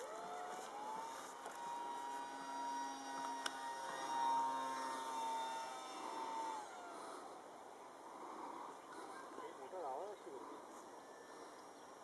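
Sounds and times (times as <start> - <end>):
electric motor propeller whine: 0.0 - 8.8.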